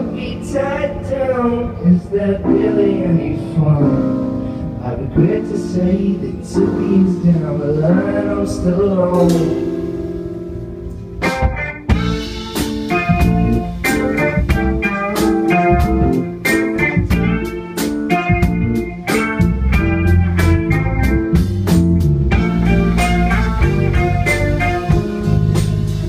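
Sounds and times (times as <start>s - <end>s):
electric guitar: 0.0s - 26.0s
keyboard: 0.0s - 26.0s
drum kit: 6.6s - 26.0s.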